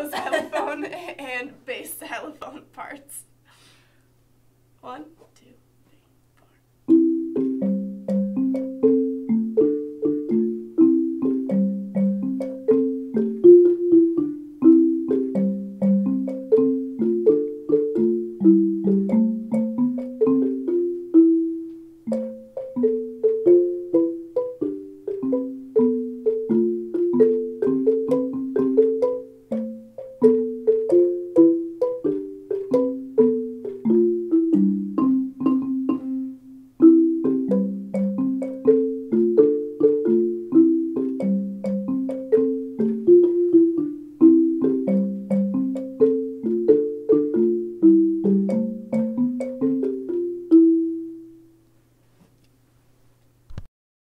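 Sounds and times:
xylophones played with mallets: 6.9 - 51.5.

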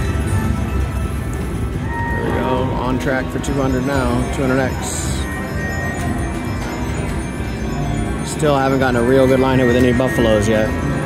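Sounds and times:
slot machine music: 0.0 - 11.0
slot machine reel-spin sounds: 0.0 - 11.0
ringing tone: 1.8 - 11.0.

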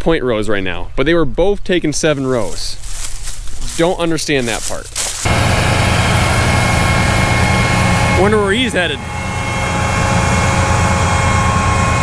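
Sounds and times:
engine rumble with high whine: 5.2 - 12.0.

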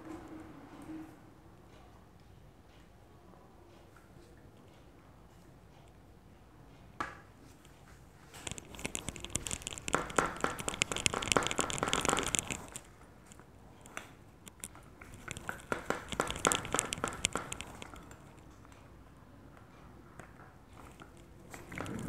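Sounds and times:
metal tube rolling over clay: 21.5 - 22.0.

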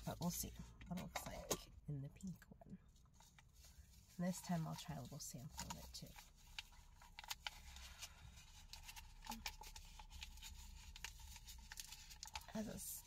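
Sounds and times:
foil packet crinkling: 5.6 - 12.8.

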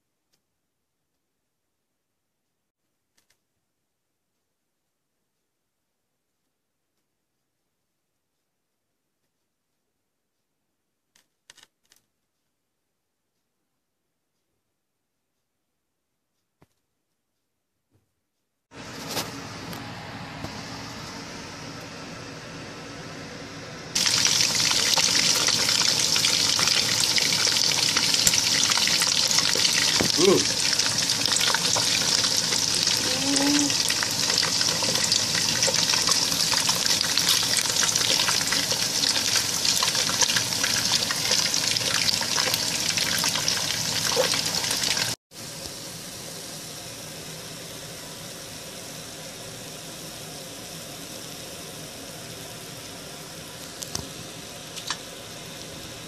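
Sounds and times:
deep-frying sizzle: 23.9 - 56.0.

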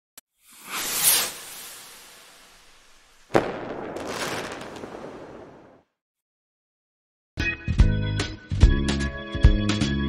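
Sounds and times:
whoosh: 0.4 - 4.1
dense crackling noise: 1.3 - 5.9.

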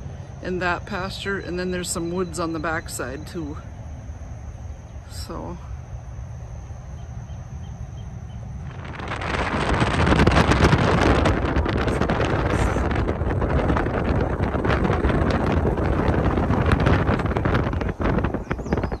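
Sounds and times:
car road noise: 6.4 - 18.8
wind buffeting microphone: 6.6 - 19.0.

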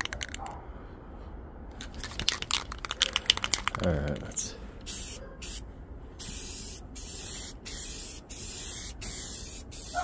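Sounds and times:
spray can shaking with rattling ball: 1.8 - 5.6.

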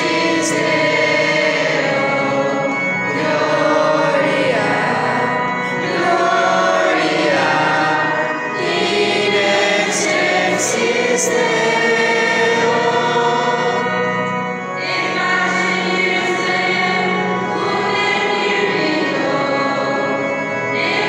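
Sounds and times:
choir singing a hymn: 0.0 - 21.0.

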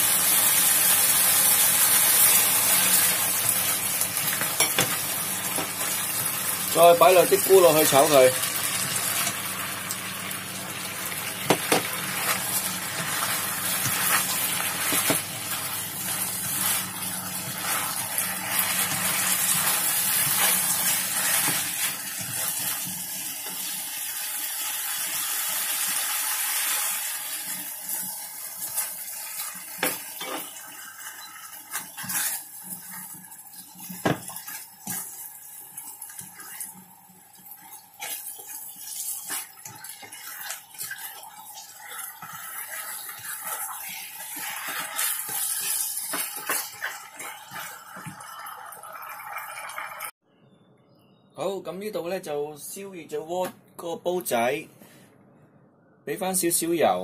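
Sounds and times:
food sizzling in a wok: 0.0 - 50.1
spatula scraping and knocking pan: 11.4 - 23.6, 37.6 - 48.3.

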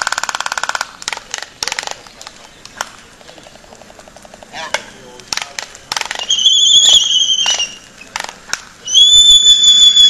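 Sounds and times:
albatross bill clacks: 0.0 - 8.8
high whistled bird calls: 6.1 - 8.1, 8.8 - 10.0.

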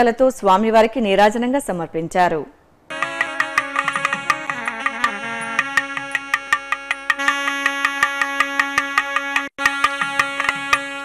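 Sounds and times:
hand drum strokes: 2.9 - 11.0
saxophones holding a note: 2.9 - 11.0.

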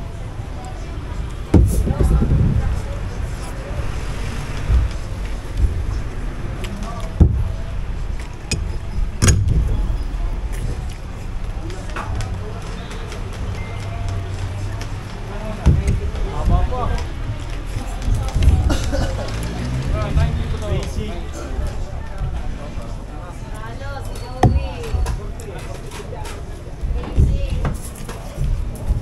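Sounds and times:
low outdoor rumble: 0.0 - 25.4
faint voices: 0.0 - 29.0.

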